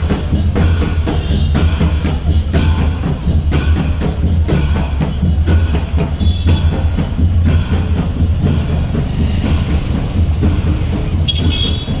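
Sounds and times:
traffic engine rumble: 0.0 - 12.0
car horn toot: 11.2 - 12.0.

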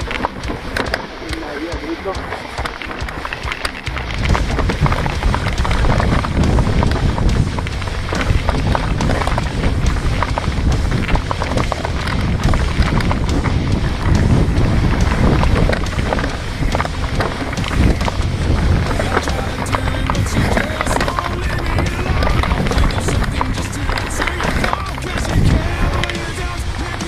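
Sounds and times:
bike chain and frame rattling: 0.0 - 27.0
tyres on dirt and rock: 0.0 - 27.0
wind buffeting microphone: 0.0 - 27.0.

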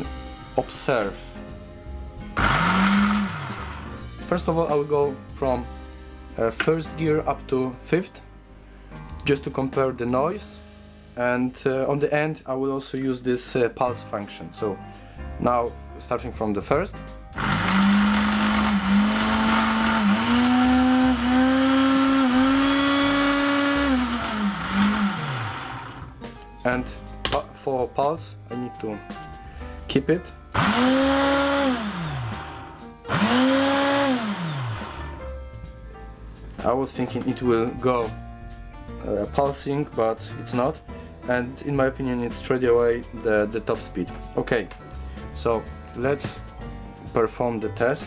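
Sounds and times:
blender motor whine: 2.4 - 4.0, 17.4 - 26.1, 30.6 - 35.2.

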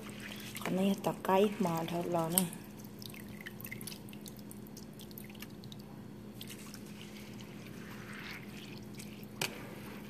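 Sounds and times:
hand stirring rice in water: 0.0 - 10.0
water dripping into bowl: 2.3 - 6.5.

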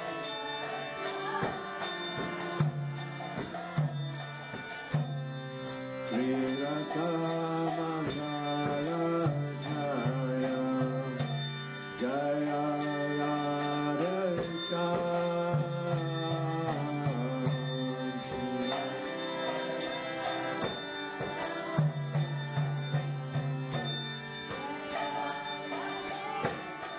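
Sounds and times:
mantra singing: 6.0 - 22.4, 24.5 - 26.9.

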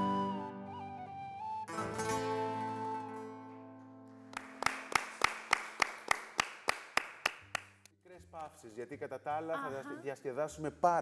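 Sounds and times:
hands clapping in rhythm: 4.3 - 8.6.

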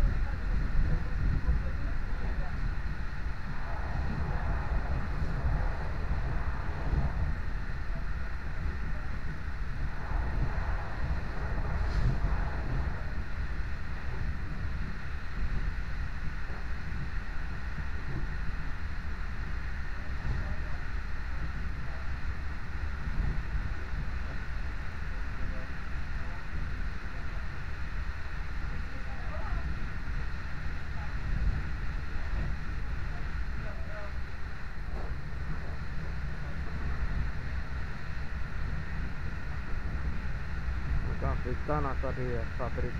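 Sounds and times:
wind rushing hiss: 0.0 - 42.9.

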